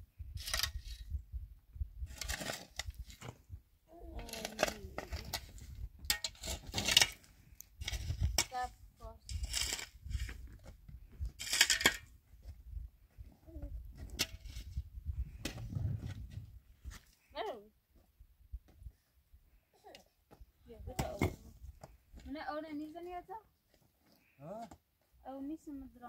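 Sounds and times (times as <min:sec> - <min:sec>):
shovel scraping stony soil: 0:00.3 - 0:01.2, 0:02.0 - 0:03.4, 0:04.2 - 0:10.5, 0:11.3 - 0:12.1, 0:14.1 - 0:16.2
child calling out: 0:03.9 - 0:05.2.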